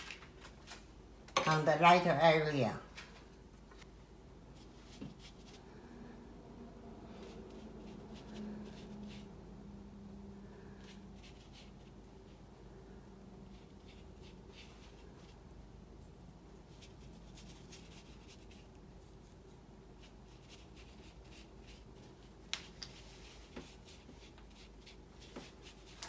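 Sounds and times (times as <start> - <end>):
paintbrush stroking paper: 4.5 - 5.7, 7.1 - 9.5, 10.5 - 26.0.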